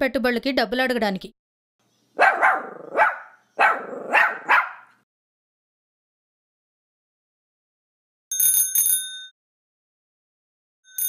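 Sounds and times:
dog barking: 0:02.2 - 0:05.0.

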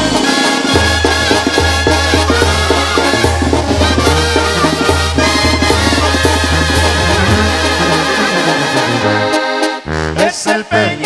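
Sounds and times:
accordion: 0:00.0 - 0:11.0
brass band playing: 0:00.0 - 0:11.0
tuba bass line: 0:00.0 - 0:11.0.

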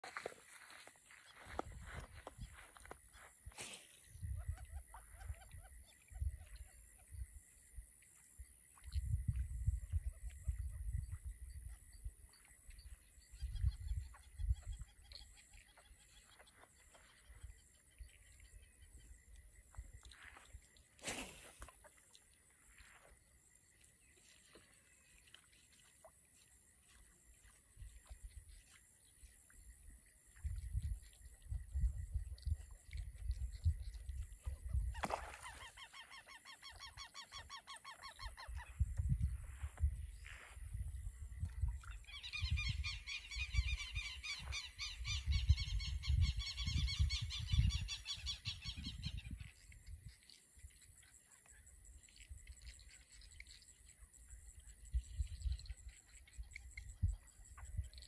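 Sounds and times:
wind on microphone: 0:04.0 - 0:07.5, 0:08.8 - 0:15.6, 0:29.6 - 0:35.5, 0:38.2 - 0:50.2, 0:54.3 - 0:58.0.

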